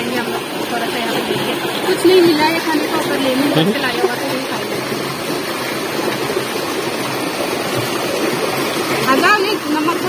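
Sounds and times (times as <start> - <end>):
stream rushing over boulders: 0.0 - 10.0.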